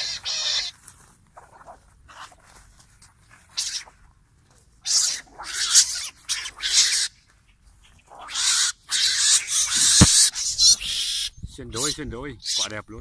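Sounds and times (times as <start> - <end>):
mongooses hissing screeches: 0.0 - 0.7, 3.5 - 3.9, 4.8 - 7.2, 7.9 - 12.7.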